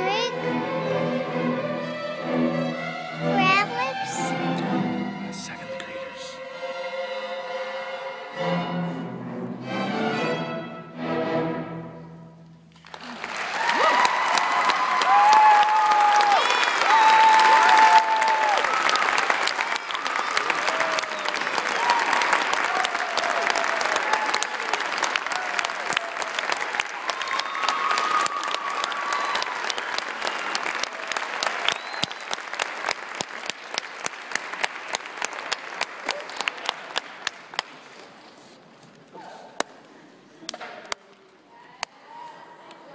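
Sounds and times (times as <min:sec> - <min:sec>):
string orchestra chords: 0:00.0 - 0:12.6
audience applause and cheers: 0:12.8 - 0:37.8.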